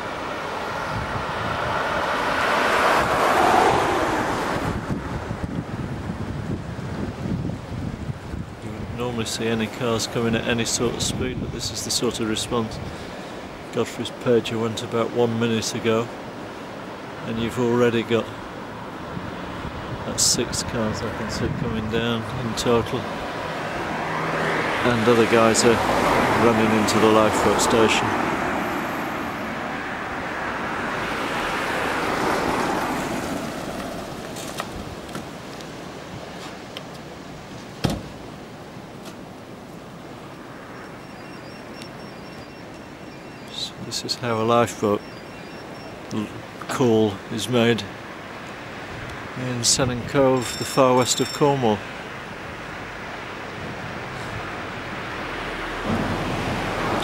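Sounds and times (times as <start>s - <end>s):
car passing by: 0.0s - 5.7s, 23.0s - 36.6s, 52.5s - 57.0s
surf washing on shore: 0.0s - 57.0s
sharp knock: 37.8s - 38.1s.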